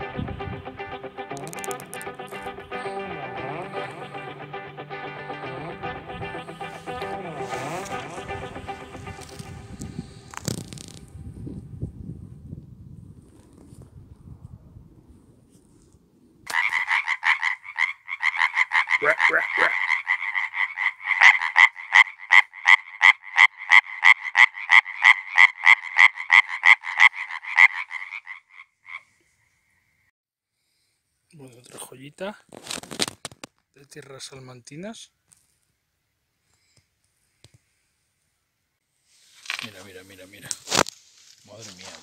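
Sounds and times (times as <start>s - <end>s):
background music: 0.0s - 10.4s
tree frog rasping calls: 16.5s - 29.8s.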